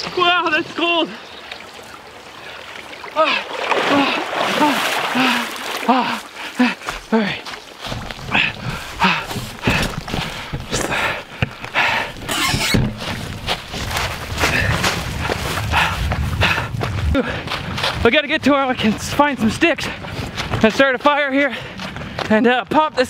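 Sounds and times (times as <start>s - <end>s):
man gasping and panting: 3.2s - 7.6s, 8.2s - 12.3s, 14.4s - 17.8s, 21.4s - 22.3s
microphone handling noise: 7.9s - 18.1s
low wind rumble: 8.3s - 21.0s
footsteps crunching dry leaves: 12.9s - 15.7s.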